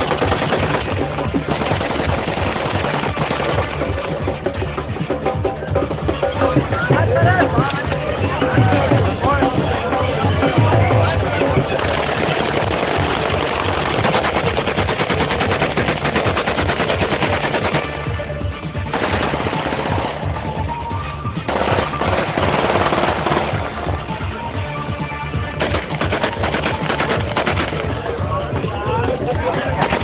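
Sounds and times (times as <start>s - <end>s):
music: 0.0s - 30.0s
automatic gunfire bursts: 11.8s - 18.1s, 18.9s - 20.3s, 21.5s - 23.6s, 25.6s - 28.0s, 29.7s - 30.0s.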